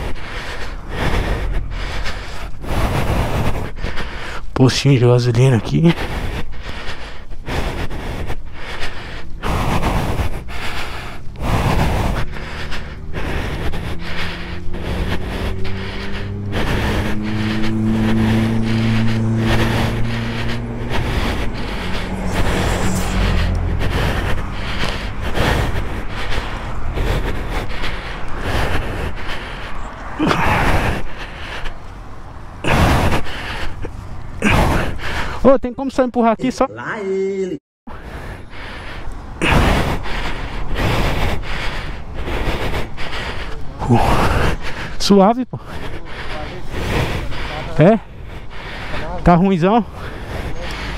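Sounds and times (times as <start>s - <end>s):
heavy vehicle engine drone: 0.0s - 37.1s, 37.9s - 45.0s, 45.6s - 50.9s
road traffic passing: 0.0s - 50.9s
wind buffeting microphone: 9.2s - 35.4s.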